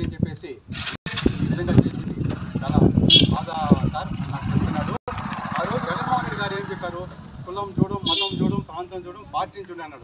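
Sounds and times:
man talking animatedly: 0:01.2 - 0:10.0.

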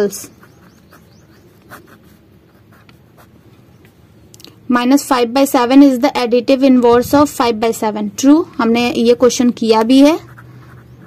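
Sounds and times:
pen scratching on paper: 0:00.3 - 0:03.4, 0:09.7 - 0:11.0.

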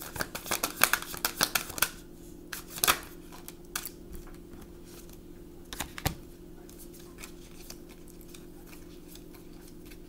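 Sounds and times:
cards being shuffled: 0:00.0 - 0:04.0, 0:04.8 - 0:10.0
steady low hum: 0:00.0 - 0:10.0.

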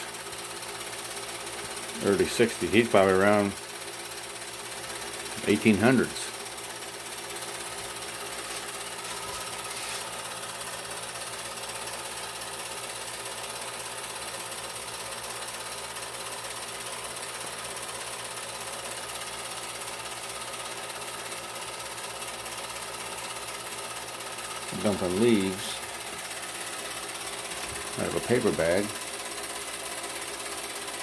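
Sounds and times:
film projector whirring: 0:00.0 - 0:31.0.

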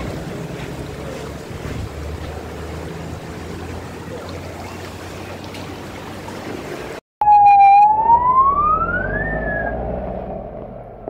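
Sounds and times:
police siren wailing: 0:07.2 - 0:10.6.

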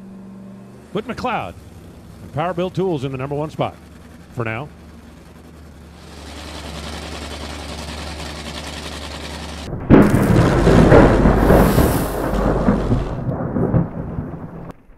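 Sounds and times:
loud ragged engine running: 0:00.0 - 0:13.8
engine starter whirring: 0:00.0 - 0:14.9.

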